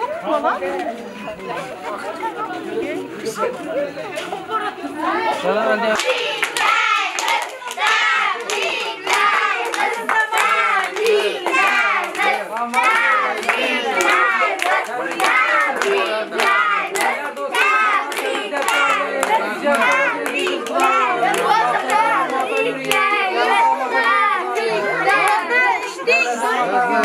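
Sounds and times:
many overlapping voices: 0.0s - 27.0s
people clapping: 5.1s - 27.0s.

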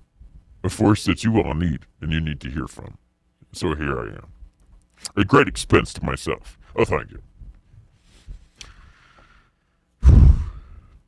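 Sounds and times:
man sighing: 10.0s - 11.0s.

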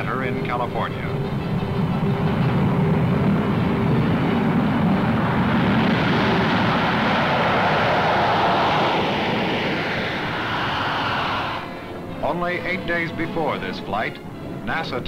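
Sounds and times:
jet engines in flight: 0.0s - 14.7s.

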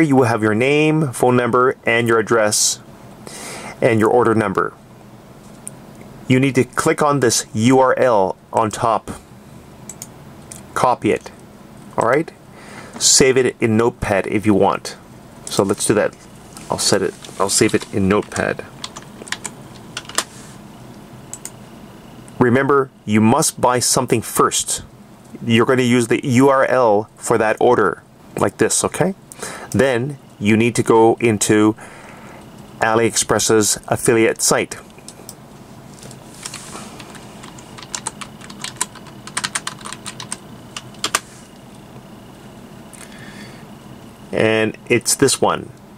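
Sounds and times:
keyboard keys clicking: 17.7s - 20.2s, 36.5s - 41.2s.

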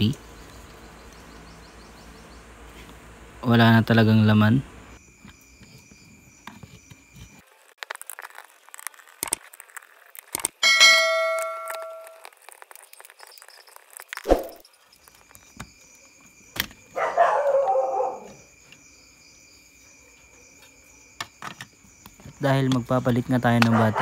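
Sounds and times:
bell-like chime: 10.6s - 12.2s.

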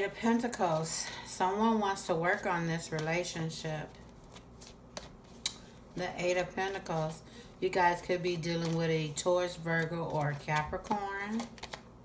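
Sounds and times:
tarot cards clicking: 4.2s - 5.7s, 10.0s - 11.9s.

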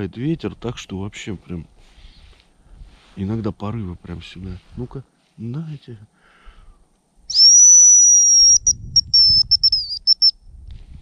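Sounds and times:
bird call decoy whistle: 7.3s - 10.4s
wind on microphone: 8.4s - 11.0s.

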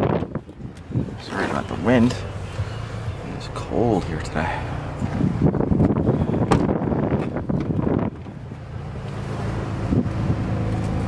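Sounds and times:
wind buffeting microphone: 0.0s - 1.4s, 4.4s - 8.7s.

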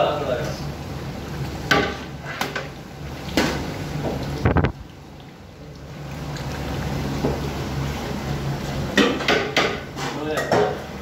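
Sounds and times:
metal pots and utensils clanking: 8.9s - 11.0s.

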